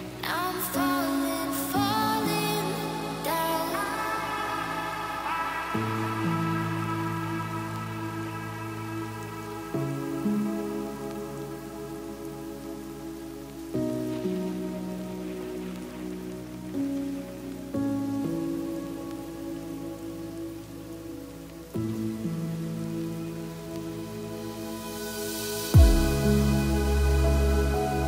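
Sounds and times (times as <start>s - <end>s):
slow sustained music chords: 0.0s - 28.0s
soft even hiss: 0.0s - 28.0s.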